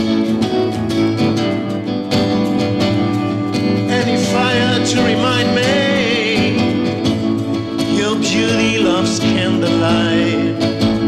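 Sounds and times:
acoustic guitar strumming: 0.0 - 11.0
man singing: 3.8 - 11.0.

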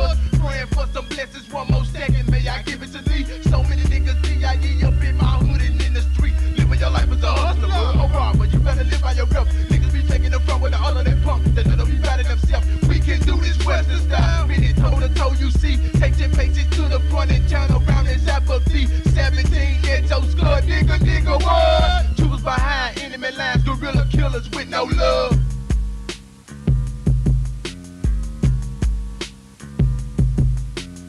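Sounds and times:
rapping over a beat: 0.0 - 25.6
heavy bass line: 0.0 - 31.0.

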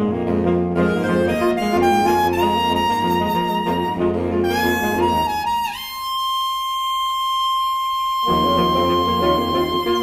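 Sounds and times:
soprano saxophone holding high note: 0.0 - 10.0.

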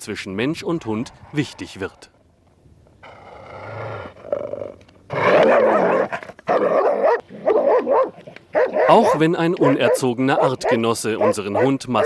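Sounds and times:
dog growling and barking: 3.1 - 12.0.

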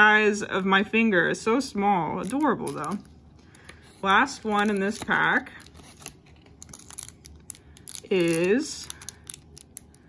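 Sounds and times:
foil packet crinkling: 2.2 - 10.0.

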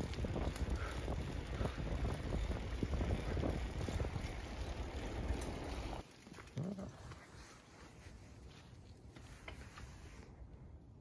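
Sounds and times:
wind buffeting microphone: 0.0 - 6.0
outdoor background: 0.0 - 11.0.

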